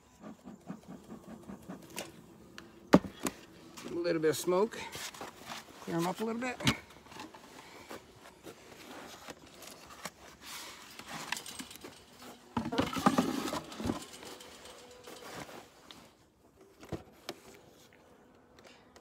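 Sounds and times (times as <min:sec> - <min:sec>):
rustling and scraping: 0:00.0 - 0:18.5.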